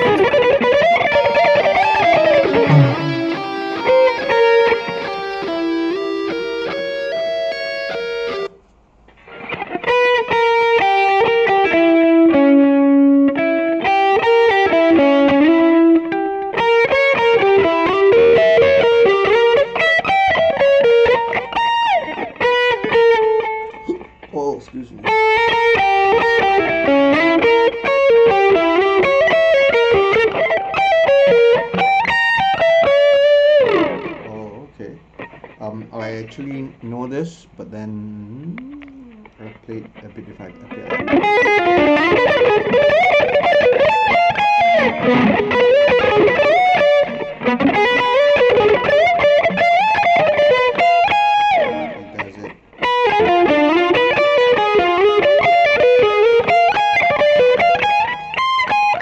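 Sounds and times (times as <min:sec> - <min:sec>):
distorted electric guitar arpeggios: 0:00.0 - 0:24.4, 0:25.0 - 0:36.9, 0:38.1 - 0:59.0.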